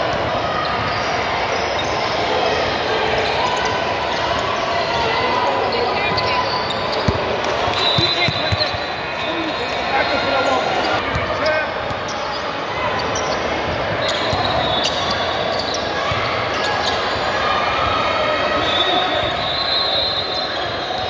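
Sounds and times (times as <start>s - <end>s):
people talking: 2.3s - 19.5s.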